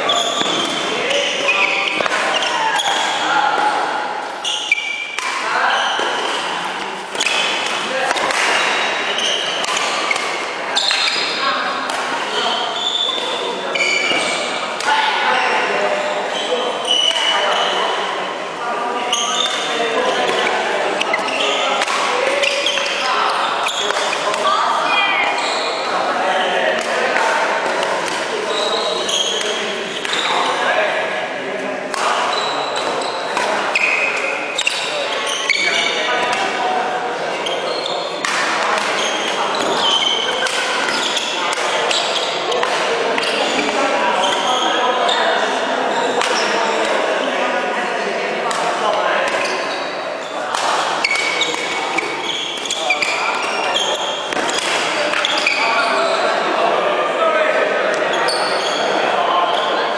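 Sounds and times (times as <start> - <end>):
voices talking: 0.0 - 59.9
racket hitting shuttlecock: 1.6 - 3.7, 4.7 - 12.2, 20.3 - 23.0, 23.7 - 24.4, 38.2 - 44.4, 54.2 - 55.6.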